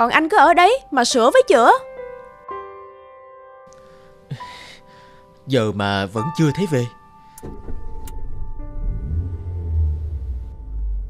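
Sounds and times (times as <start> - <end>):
soft background music: 0.0 - 11.0
car engine rumble: 7.4 - 11.0.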